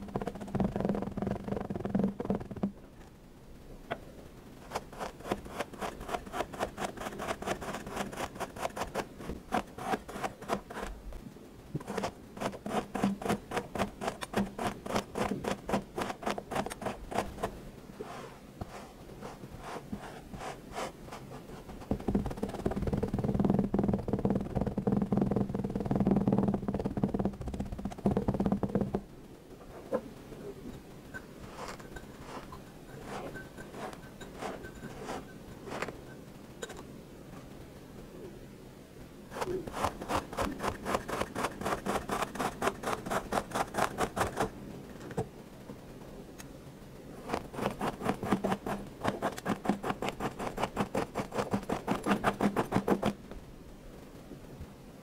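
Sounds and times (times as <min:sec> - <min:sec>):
tool scraping kinetic sand: 0:04.6 - 0:10.9, 0:11.8 - 0:23.6, 0:31.4 - 0:36.0, 0:39.3 - 0:44.5, 0:47.2 - 0:53.2.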